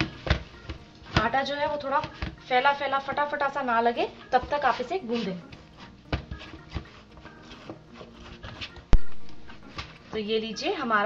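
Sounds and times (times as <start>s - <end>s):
hands kneading dough: 0.0s - 11.0s.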